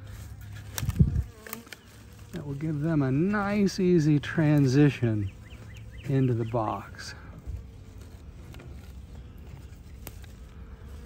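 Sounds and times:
honey bee buzzing: 0:00.0 - 0:11.0.

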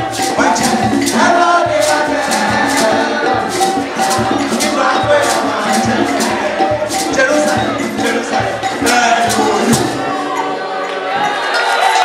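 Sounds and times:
group of voices singing: 0:00.0 - 0:12.0
shaker percussion beat: 0:00.0 - 0:12.0.

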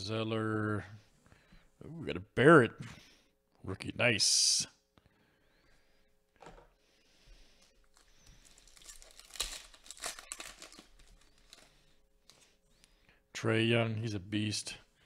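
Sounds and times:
trading cards rustling and clicking: 0:07.6 - 0:12.5.

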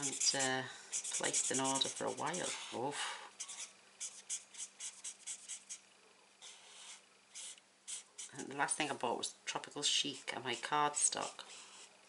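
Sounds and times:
marker scratching on cardstock: 0:00.0 - 0:02.7, 0:03.4 - 0:05.8, 0:06.4 - 0:08.7, 0:10.0 - 0:11.9.

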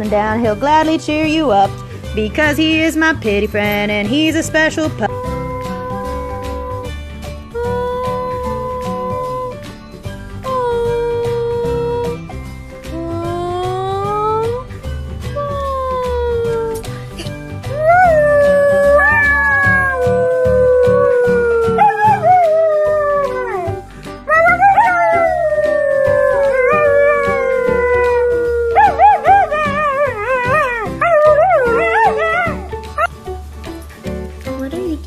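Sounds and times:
background music with steady beat: 0:00.0 - 0:35.0
dog howling: 0:05.1 - 0:09.6, 0:10.5 - 0:12.3, 0:15.4 - 0:16.8, 0:17.7 - 0:32.7.

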